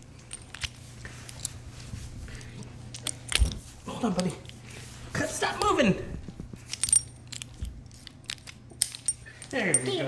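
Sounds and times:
metal leash clip clinking: 0:06.7 - 0:10.0.

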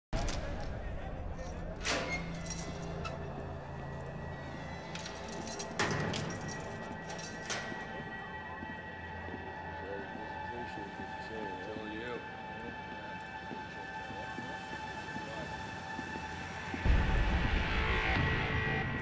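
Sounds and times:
tense music score: 0:00.2 - 0:19.0.

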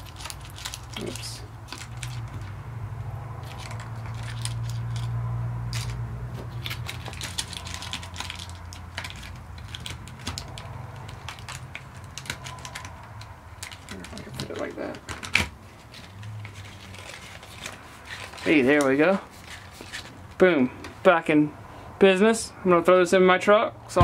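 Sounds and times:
small items clicking and rattling: 0:00.0 - 0:02.5, 0:03.4 - 0:20.2.

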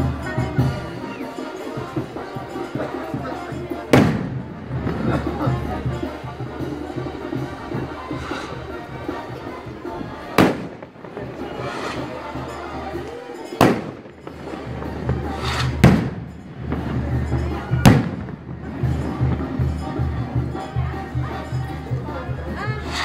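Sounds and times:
band music with low beat: 0:00.0 - 0:23.0
fireworks bangs: 0:03.9 - 0:06.2, 0:06.8 - 0:19.6.

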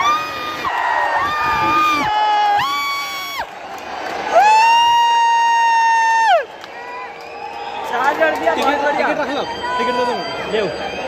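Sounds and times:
man cheering with loud shouts: 0:01.0 - 0:03.4.

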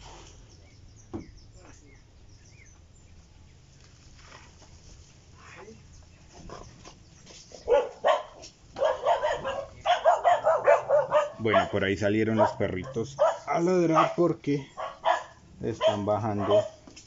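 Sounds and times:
dogs barking: 0:07.6 - 0:16.9.

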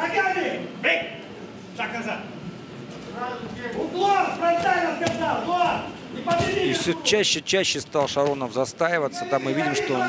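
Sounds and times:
arena crowd noise: 0:00.0 - 0:10.0
man speaking: 0:03.2 - 0:10.0.

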